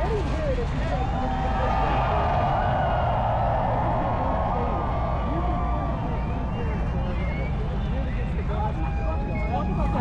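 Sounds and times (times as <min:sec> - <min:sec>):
chatter of many voices: 0:00.0 - 0:10.0
crowd cheering: 0:00.8 - 0:07.9.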